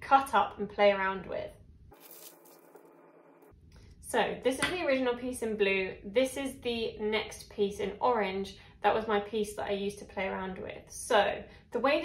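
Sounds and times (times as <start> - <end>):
paper rustling: 1.9 - 3.0.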